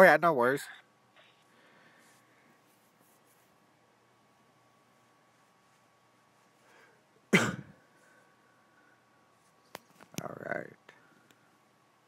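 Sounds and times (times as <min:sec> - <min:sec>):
man coughing: 0:07.3 - 0:07.8.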